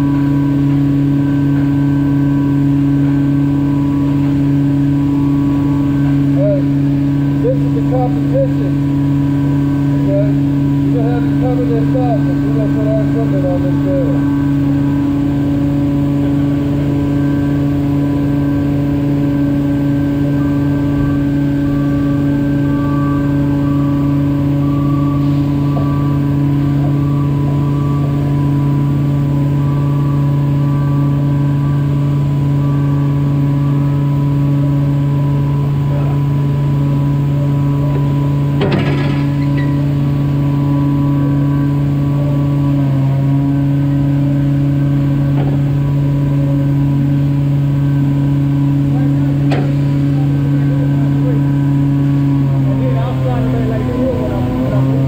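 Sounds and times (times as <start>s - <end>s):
machinery humming: 0.0s - 55.0s.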